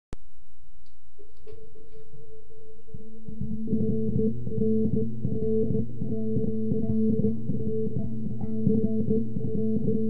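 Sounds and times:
electric bass riff: 1.6 - 10.0.

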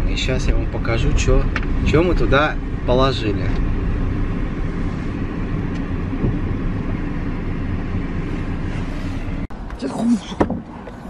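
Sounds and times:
van engine running: 0.0 - 11.0.

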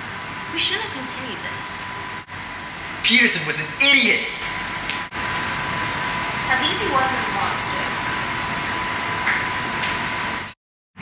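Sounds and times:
room tone hiss: 0.0 - 10.6.

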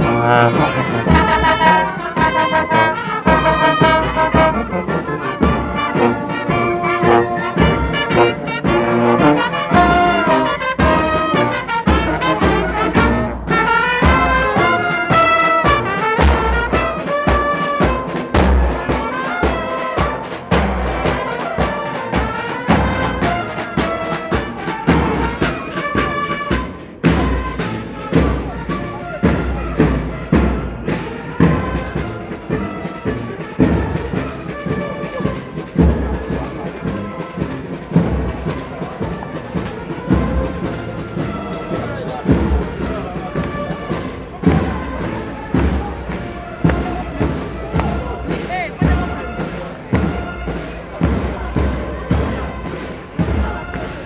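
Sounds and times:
marching band trumpets: 0.0 - 54.0
bass drum beat: 3.2 - 23.4.

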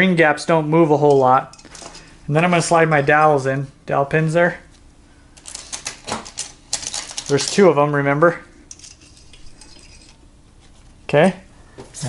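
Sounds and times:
light metal clinks and rubbing: 8.7 - 10.2.

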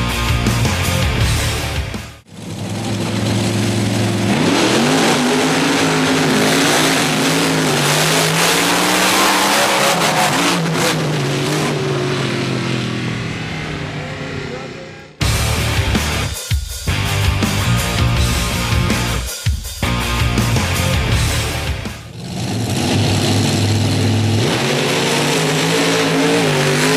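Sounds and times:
truck engine at full throttle: 0.0 - 26.9.

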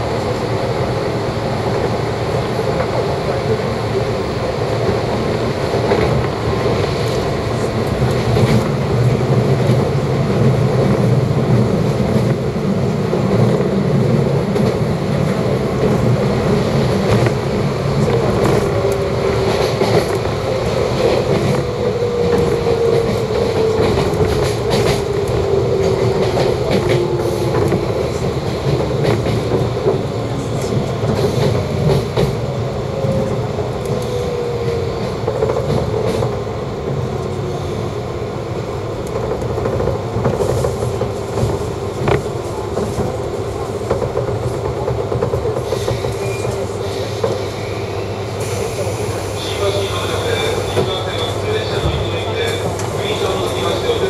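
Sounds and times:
train wheel and rail noise: 0.0 - 54.0.

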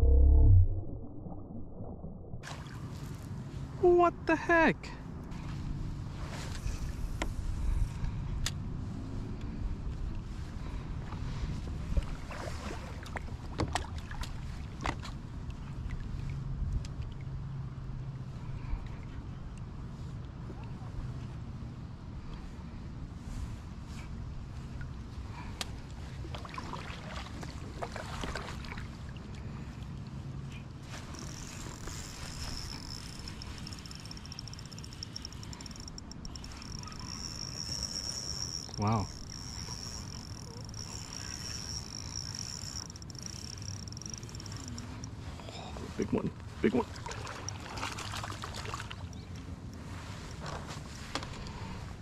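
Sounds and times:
steady low rumble: 0.0 - 2.8
steady low hum: 0.0 - 3.8, 29.2 - 52.0
fishing reel clicks and knocks: 31.0 - 45.2
insect buzzing: 31.1 - 45.0.

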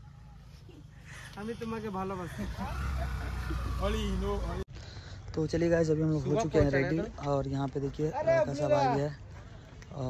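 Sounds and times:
men's voices: 0.7 - 10.0.

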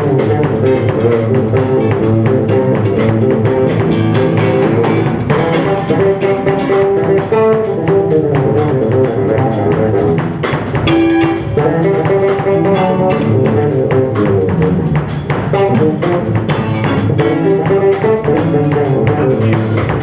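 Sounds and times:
drum kit with cymbal strokes: 0.0 - 20.0
electric bass: 0.0 - 20.0
electric guitar melodic lines: 0.0 - 20.0.

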